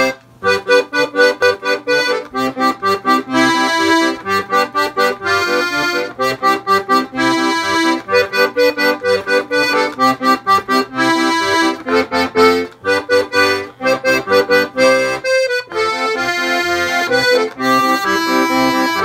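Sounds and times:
accordion playing a polka: 0.0s - 19.0s.

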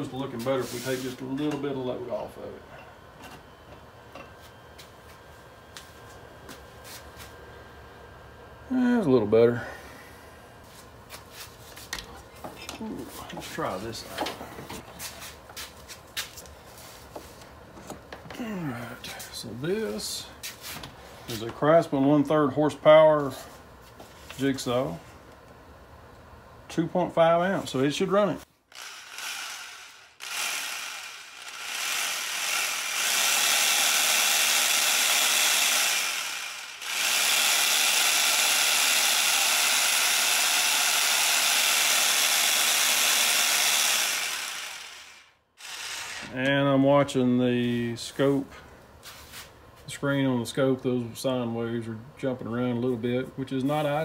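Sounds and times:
electric jigsaw running: 28.7s - 46.4s.

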